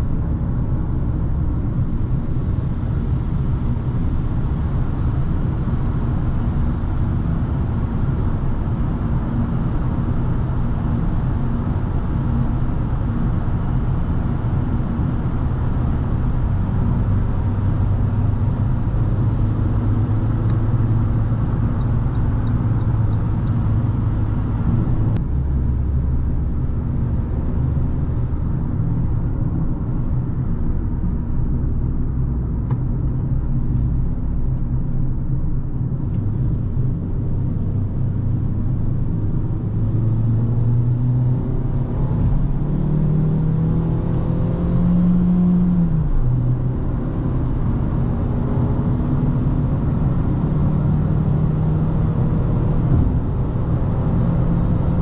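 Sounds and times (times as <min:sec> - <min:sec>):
car engine accelerating: 0:16.8 - 0:55.0.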